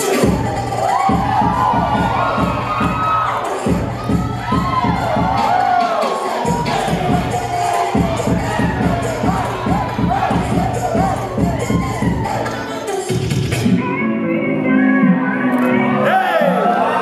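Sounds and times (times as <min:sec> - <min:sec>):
dance music with bass beat: 0:00.0 - 0:16.8
audience cheering and whooping: 0:00.1 - 0:12.9, 0:16.0 - 0:17.0.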